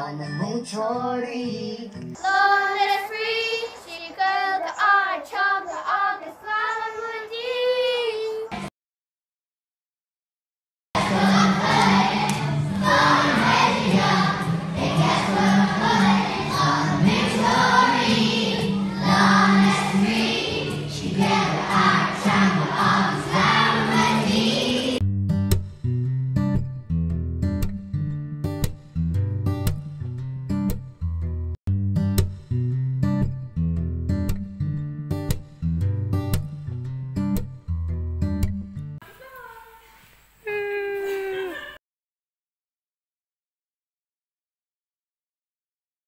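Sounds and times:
children's choir singing: 2.2s - 8.3s, 11.0s - 25.0s
child singing high melody: 2.2s - 8.5s.

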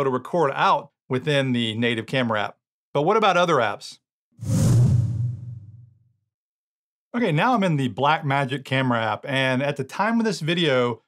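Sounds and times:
whoosh: 4.4s - 6.0s.

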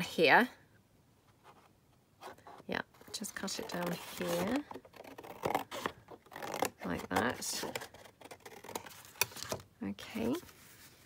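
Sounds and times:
scissors cutting cardstock: 3.4s - 9.6s.

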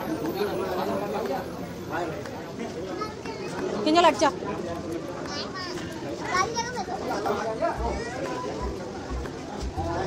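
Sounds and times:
people chatting: 0.0s - 10.0s
small child's high voice: 5.3s - 7.1s, 7.8s - 8.8s.

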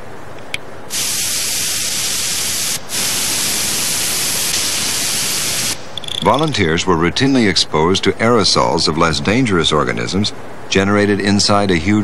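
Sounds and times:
pressurised gas hissing: 0.9s - 6.2s.

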